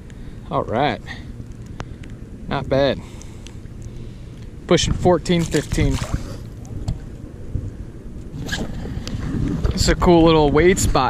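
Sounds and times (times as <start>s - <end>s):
wind rumbling on microphone: 0.0s - 11.0s
small splash in water: 5.3s - 6.3s.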